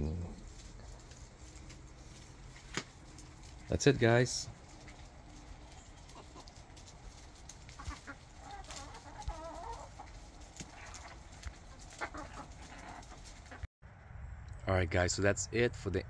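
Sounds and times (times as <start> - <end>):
hens clucking: 0.0 - 13.7.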